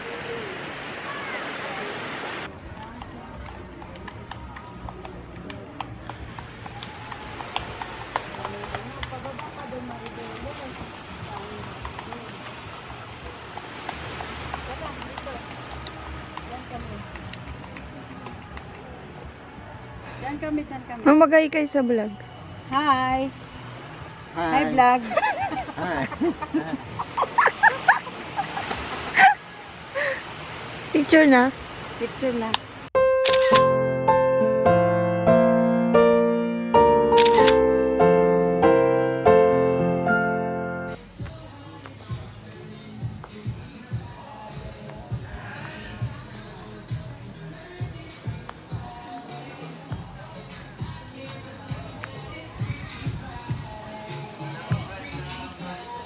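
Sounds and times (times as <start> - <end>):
piano chords: 33.0 - 41.0
camera shutter click: 33.2 - 33.7, 37.2 - 37.6.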